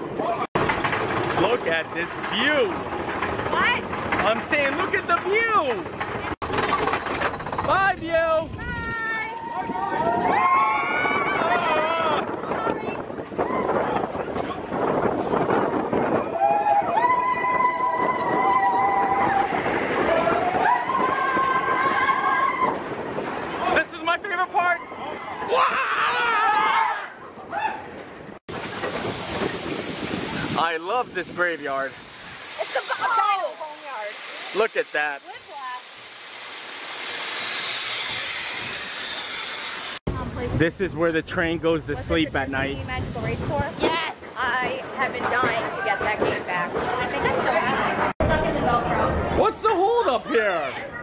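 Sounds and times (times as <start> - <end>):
roller coaster track rumble: 0.0 - 51.0
wind: 0.0 - 51.0
riders whooping: 8.4 - 14.7, 15.5 - 23.8, 24.8 - 28.0
steam hissing: 28.5 - 40.0.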